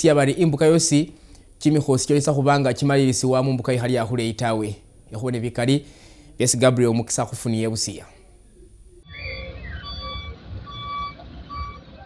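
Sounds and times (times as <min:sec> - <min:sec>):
low engine rumble: 0:08.2 - 0:12.0
reversing alarm beeping: 0:09.0 - 0:12.0.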